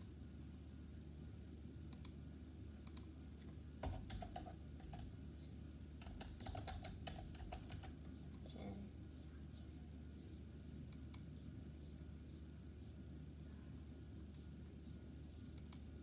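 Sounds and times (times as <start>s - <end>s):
low steady hum: 0.0s - 16.0s
typing on computer keyboard: 3.8s - 5.1s, 6.0s - 8.0s.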